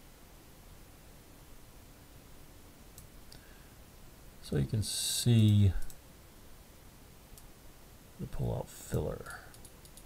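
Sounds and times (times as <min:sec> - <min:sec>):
computer mouse clicks: 0:05.4 - 0:06.0, 0:09.2 - 0:10.0.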